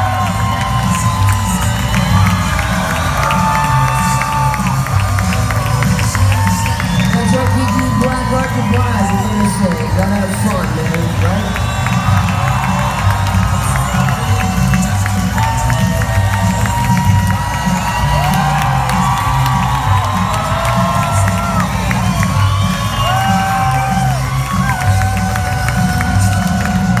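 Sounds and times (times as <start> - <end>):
audience whoops and shouts: 0.0 - 27.0.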